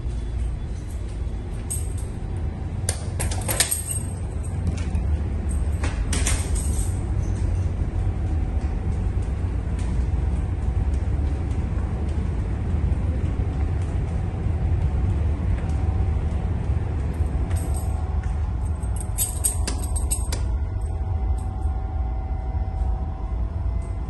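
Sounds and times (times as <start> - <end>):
faint high hum: 0.0 - 24.0
ship machinery rumble: 0.0 - 24.0
faint metallic jingling: 18.6 - 21.6.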